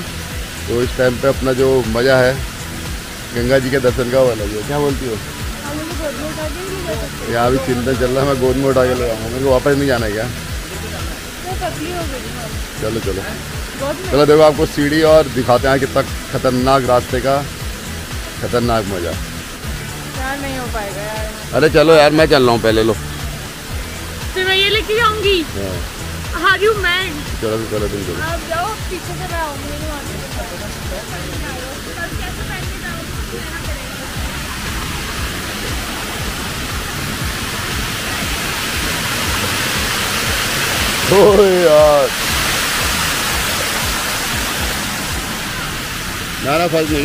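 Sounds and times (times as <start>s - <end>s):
floodwater rushing over pavement: 0.0s - 47.0s.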